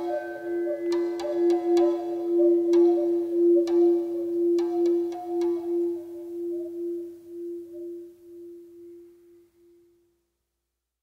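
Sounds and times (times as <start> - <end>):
fainter higher tone: 0.0 - 10.0
steady pure tone: 0.0 - 10.2.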